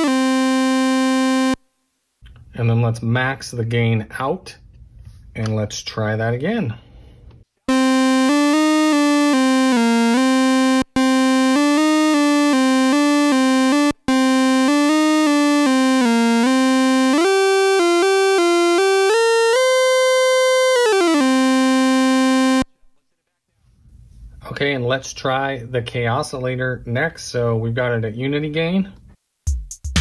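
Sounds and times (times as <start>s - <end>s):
stylophone melody: 0.0s - 1.6s, 7.7s - 22.7s.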